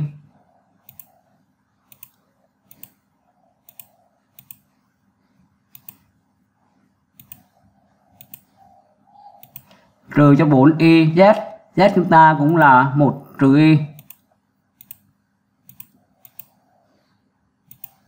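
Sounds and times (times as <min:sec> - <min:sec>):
computer mouse clicking: 0:00.4 - 0:05.0, 0:05.6 - 0:06.3, 0:07.1 - 0:10.0, 0:12.4 - 0:12.7, 0:13.9 - 0:18.0.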